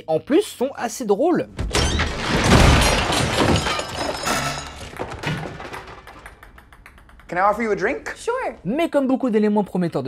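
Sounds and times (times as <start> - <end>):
household objects crashing down: 1.6 - 6.6.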